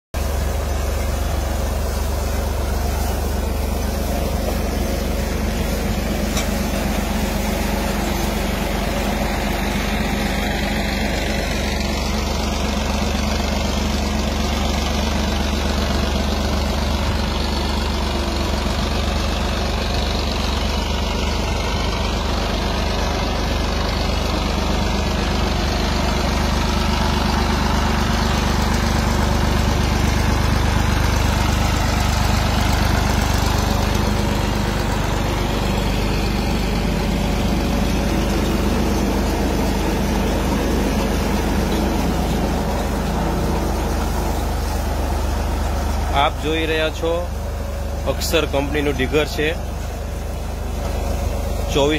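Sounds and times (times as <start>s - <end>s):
tractor diesel engine running: 0.1s - 51.9s.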